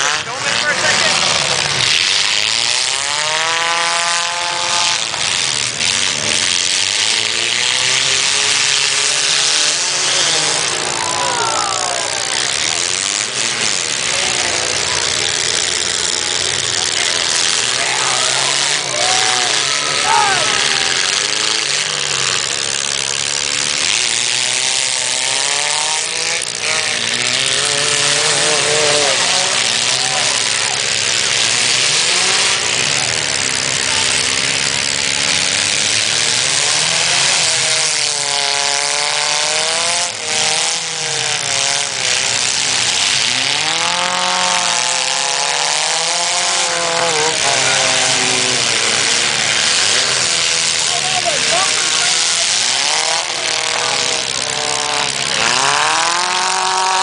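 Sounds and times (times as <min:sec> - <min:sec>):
car engines revving hard: 0:00.0 - 0:57.0
crowd noise: 0:00.0 - 0:57.0.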